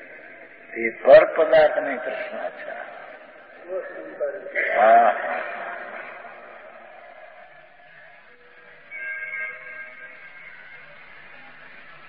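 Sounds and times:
man lecturing: 0.1 - 6.5.

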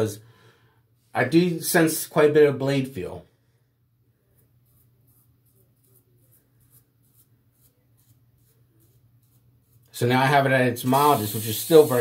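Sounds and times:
safety razor scratchy strokes: 4.6 - 10.2, 10.8 - 12.0.

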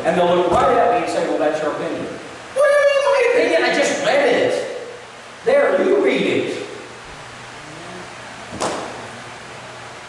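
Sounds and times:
book thump on wooden pulpit: 8.5 - 9.0.

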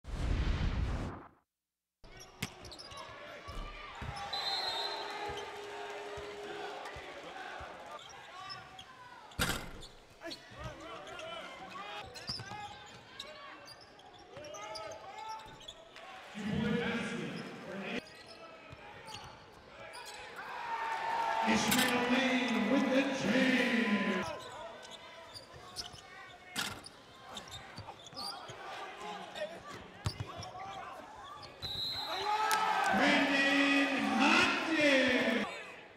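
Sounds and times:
voices of players and crowd: 2.0 - 35.9.

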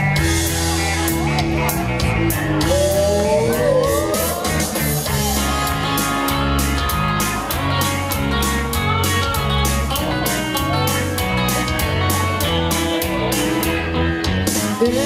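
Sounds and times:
country-rock band music: 0.0 - 15.0.

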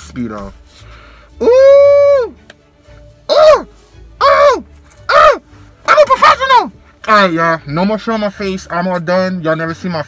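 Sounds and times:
man giving high ooh calls: 1.4 - 2.4, 3.3 - 5.4.

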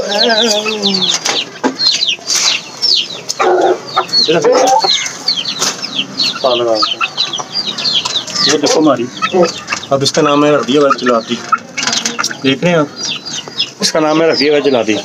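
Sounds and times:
chickens clucking: 0.0 - 15.0
chicks peeping: 0.0 - 15.0.

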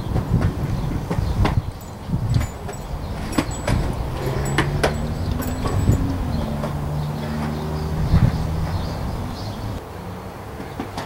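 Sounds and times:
skateboard wheels rolling on pavement: 0.0 - 11.0.

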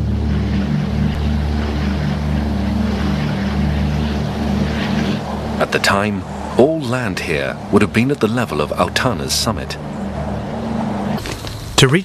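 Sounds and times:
rushing noise: 0.0 - 11.9
engine drone: 0.0 - 12.0.

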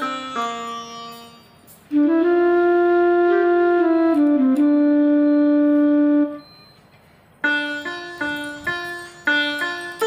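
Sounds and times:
electronic keyboard sustained note: 0.0 - 6.7, 7.4 - 10.0.

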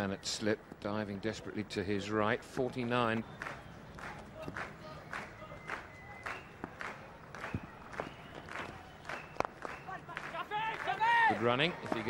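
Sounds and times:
scattered clapping: 3.1 - 12.0
short steady whistle tones: 5.2 - 6.8, 7.4 - 10.0.

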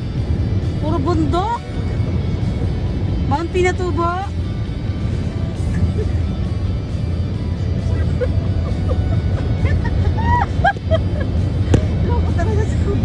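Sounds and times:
car cabin road rumble: 0.0 - 13.0.

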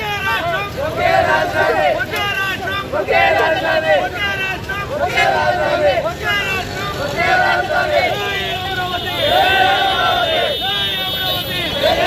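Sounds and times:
crowd shouting slogans: 0.0 - 12.0.

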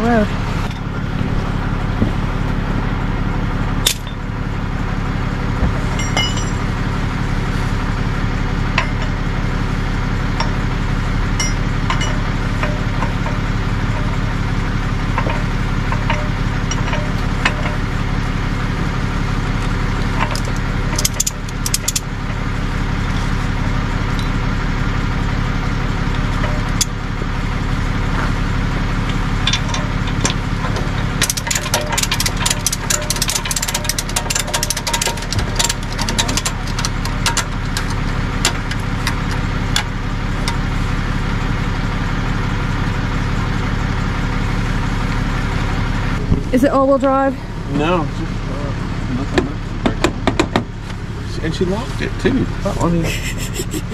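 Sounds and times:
truck engine idling: 0.0 - 53.9
metallic clicks and rattles: 15.1 - 17.9, 19.6 - 22.4, 29.0 - 40.7.

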